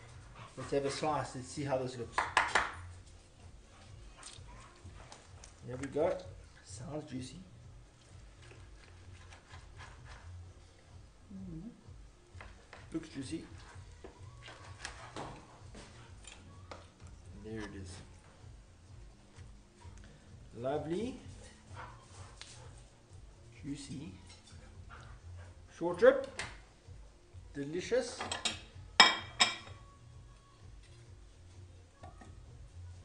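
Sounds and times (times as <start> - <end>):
knife crackling through meat crust: 8.2 - 10.4, 14.4 - 15.3
ceramic plates clinking: 28.2 - 29.7.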